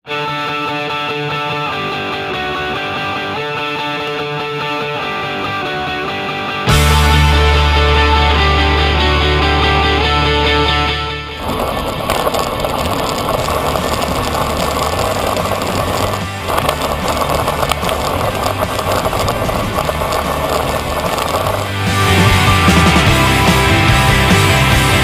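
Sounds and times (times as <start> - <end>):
rock music: 0.1 - 11.4, 14.3 - 25.0
bike tyre and wind noise: 11.2 - 25.0.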